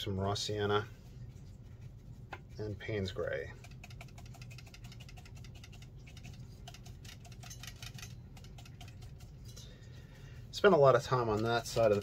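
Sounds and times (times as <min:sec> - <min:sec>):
brush scrubbing and dabbing: 0:00.0 - 0:07.5, 0:08.3 - 0:12.0
low steady hum: 0:00.0 - 0:12.0.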